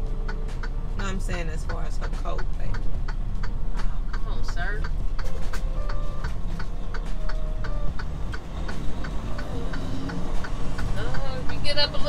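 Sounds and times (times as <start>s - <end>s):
truck engine running low: 0.0s - 12.0s
turn signal clicking: 0.0s - 12.0s.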